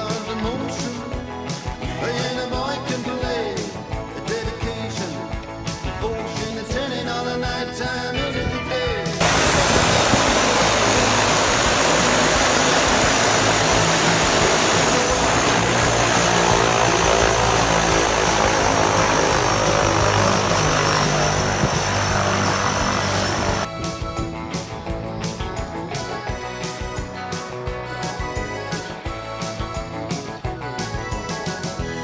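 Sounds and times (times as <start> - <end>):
music: 0.0 - 32.0
faint high whine: 9.2 - 23.7
airplane engine roaring: 9.2 - 26.2.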